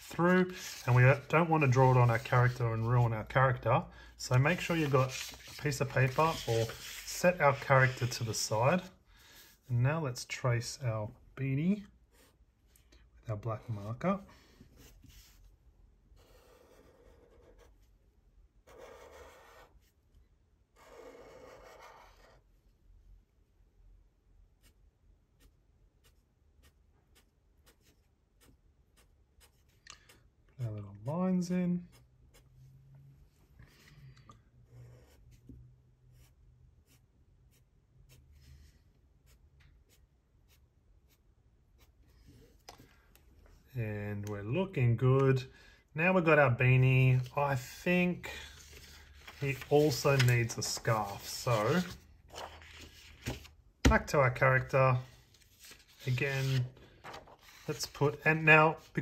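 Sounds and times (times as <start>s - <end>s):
marker scratching on paper: 0.0s - 3.0s, 4.4s - 8.4s, 14.8s - 15.4s, 16.2s - 17.9s, 18.6s - 20.0s, 20.8s - 22.4s, 34.7s - 35.4s, 36.2s - 42.6s, 57.3s - 58.0s.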